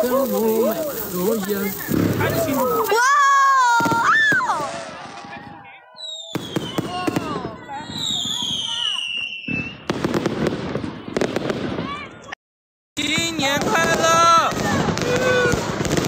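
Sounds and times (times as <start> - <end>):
fireworks crackling and popping: 0.0 - 12.4, 13.0 - 16.0
firework whistles falling in pitch: 3.8 - 10.0.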